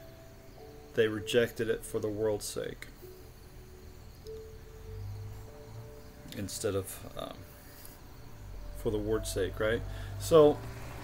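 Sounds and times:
faint music with held notes: 0:00.0 - 0:11.0.

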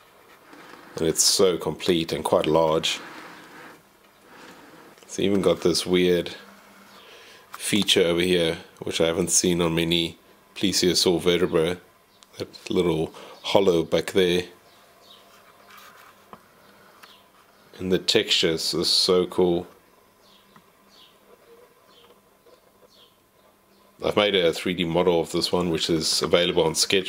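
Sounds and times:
faint steady buzz: 0:00.0 - 0:27.0.

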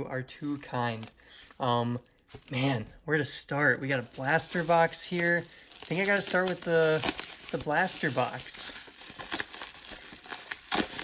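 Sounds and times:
bubble wrap crinkling: 0:00.4 - 0:11.0.

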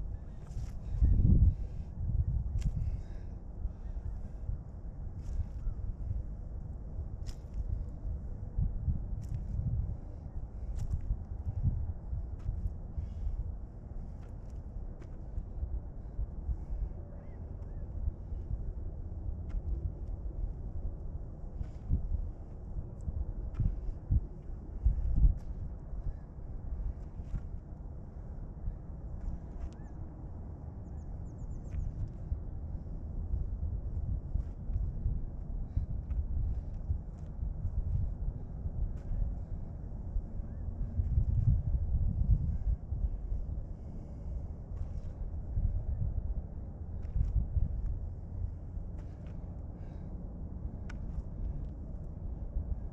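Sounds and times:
wind buffeting microphone: 0:00.0 - 0:52.9.

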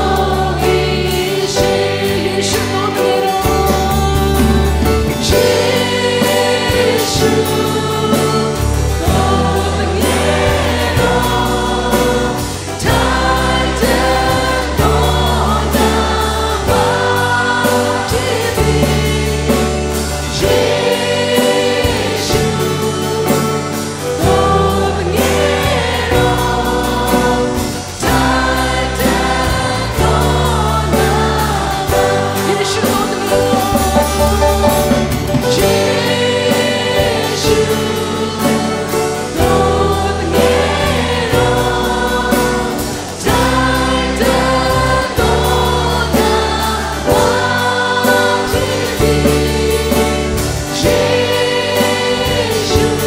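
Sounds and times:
acoustic guitars: 0:00.0 - 0:53.0
bass line: 0:00.0 - 0:53.0
people singing worship song: 0:00.0 - 0:53.0.

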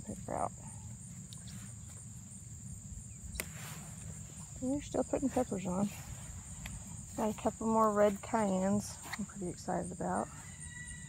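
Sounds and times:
insects trilling: 0:00.0 - 0:11.0
pepper snapping off plant: 0:03.3 - 0:03.6.

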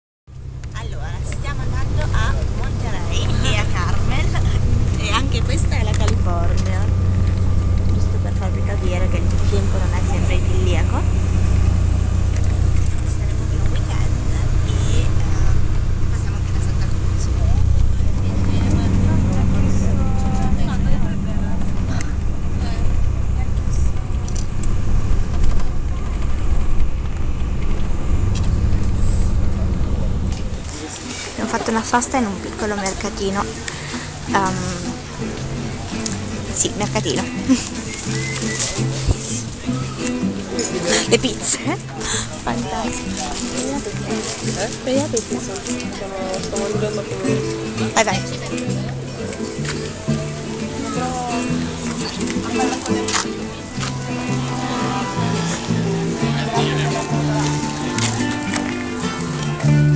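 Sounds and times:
bus rumbling: 0:00.3 - 0:59.9
car engine and road noise: 0:00.3 - 0:59.9
voices talking: 0:00.4 - 0:59.9.

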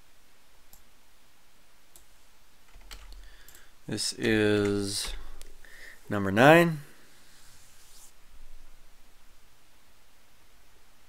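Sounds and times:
computer mouse clicks: 0:02.7 - 0:05.5.

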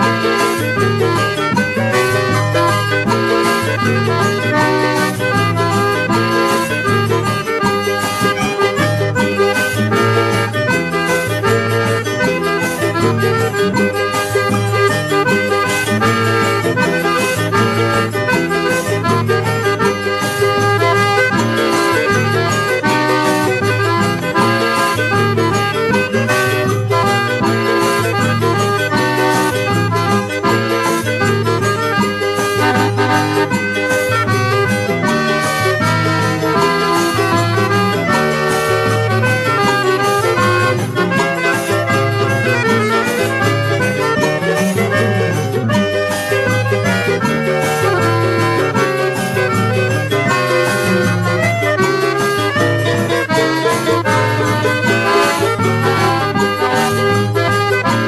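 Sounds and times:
bass and percussion beat: 0:00.0 - 0:58.0
piano accordion dance tune: 0:00.0 - 0:58.0.

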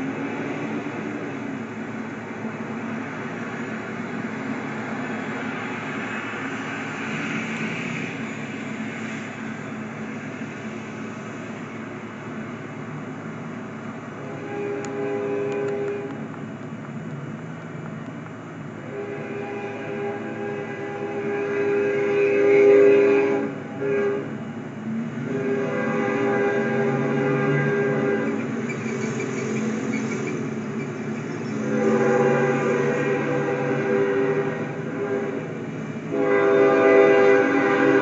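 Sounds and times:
locomotive air horn blasts: 0:14.2 - 0:16.2, 0:18.8 - 0:24.4, 0:25.2 - 0:28.6, 0:31.6 - 0:38.0.

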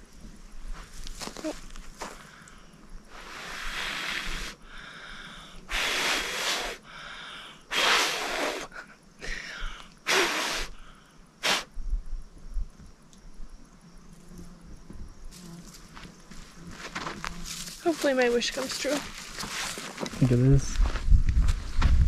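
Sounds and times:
person blowing puffs of breath: 0:03.1 - 0:11.7.

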